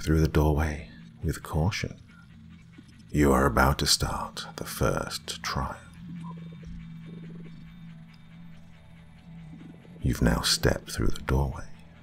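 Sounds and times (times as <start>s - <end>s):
low horror music drone: 0.0s - 12.0s.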